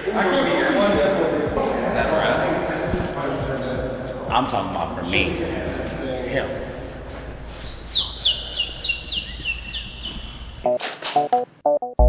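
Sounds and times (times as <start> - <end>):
high falling chirps: 7.6 - 10.8.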